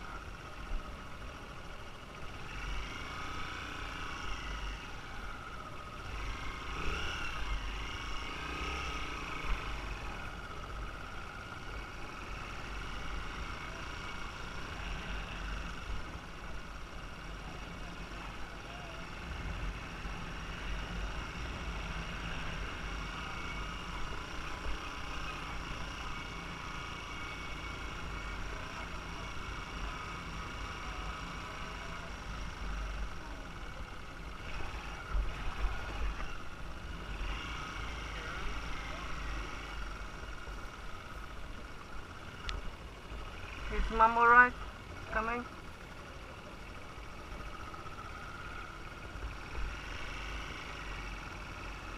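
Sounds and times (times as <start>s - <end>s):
motorbike engine running: 0.0s - 51.9s.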